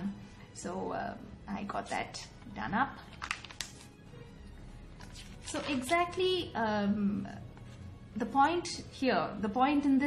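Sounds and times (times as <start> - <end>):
faint background music: 0.0 - 10.0
paper page rustling: 3.1 - 4.0, 5.0 - 6.5.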